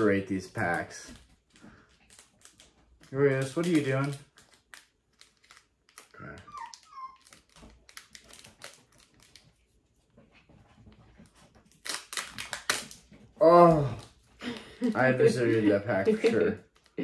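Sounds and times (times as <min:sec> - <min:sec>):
foil wrapper crinkling: 0:01.6 - 0:09.8, 0:11.6 - 0:13.1
puppy whining: 0:06.1 - 0:07.8.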